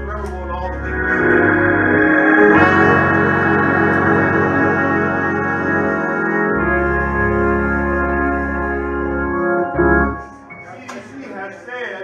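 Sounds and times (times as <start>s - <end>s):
deep bass note: 0.0s - 9.9s
organ chords: 0.0s - 11.6s
trumpet: 1.0s - 10.2s.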